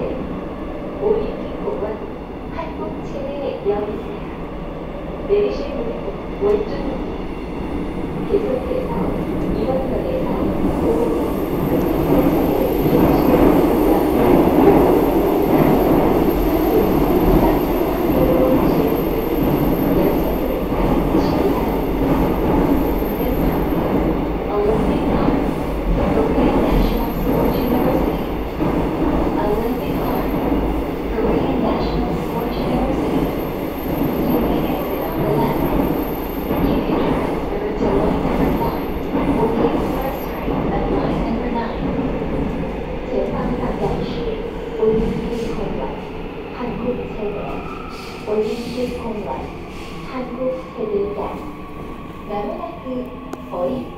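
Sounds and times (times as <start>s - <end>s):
train wheels rumbling on rails: 6.4s - 53.9s.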